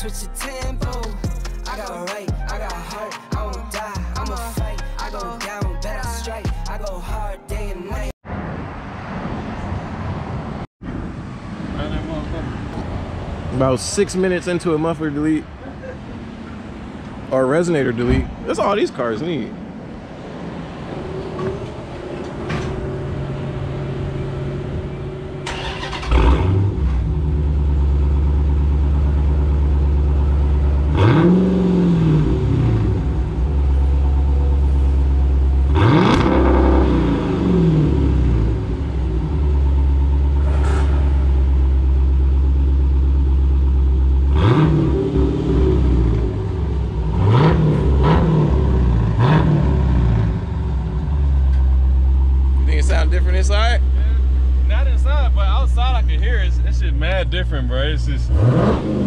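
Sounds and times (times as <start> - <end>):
car engine starting and revving: 19.8 - 59.0.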